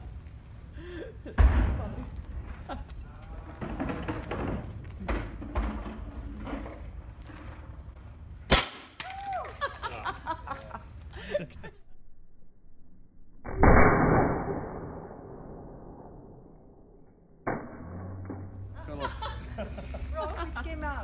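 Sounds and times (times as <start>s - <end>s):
heavy low thump: 1.3s - 2.7s
sharp crack: 8.5s - 9.5s, 13.4s - 16.4s.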